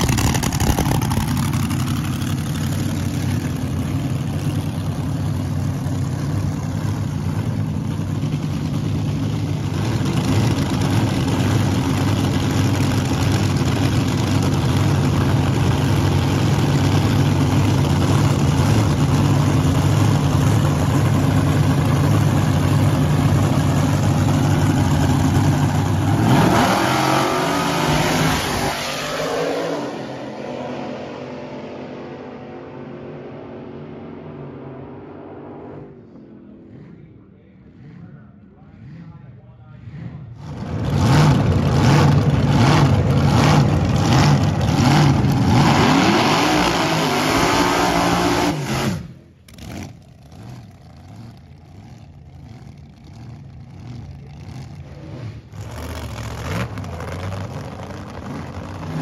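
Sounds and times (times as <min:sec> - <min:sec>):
dragster engine idling: 0:00.0 - 0:26.2, 0:36.0 - 0:45.5, 0:49.1 - 0:59.0
dragster engine blast accelerating: 0:00.0 - 0:59.0.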